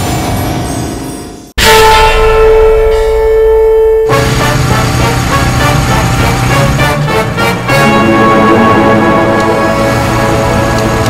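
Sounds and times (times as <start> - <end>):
held musical note: 1.6 - 11.0.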